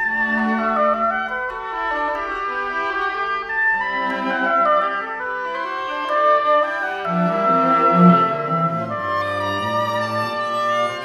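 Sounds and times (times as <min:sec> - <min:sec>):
bowed strings: 0:00.0 - 0:11.0
oboe: 0:00.0 - 0:11.0.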